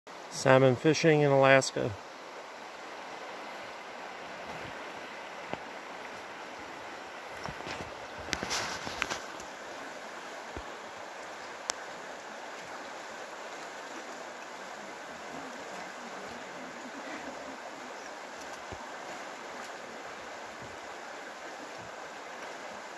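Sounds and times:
river rushing over rocks: 0.1s - 22.9s
rustling and clicks: 7.4s - 9.5s.

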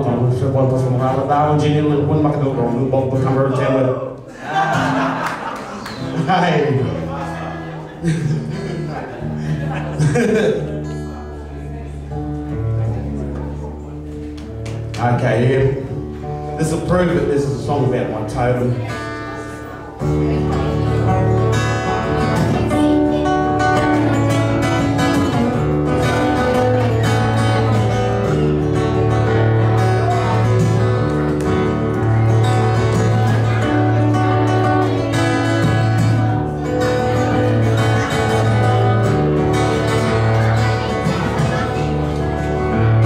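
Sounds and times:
acoustic guitar chords: 0.0s - 43.0s.

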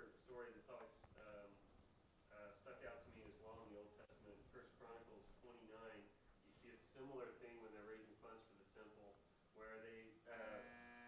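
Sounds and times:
faint man speaking: 0.0s - 1.6s, 2.3s - 10.8s
long buzzy sound: 10.3s - 11.0s.

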